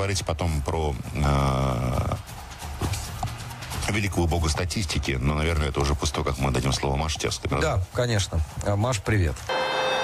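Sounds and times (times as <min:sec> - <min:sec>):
man talking: 0:00.0 - 0:02.3, 0:03.8 - 0:09.5.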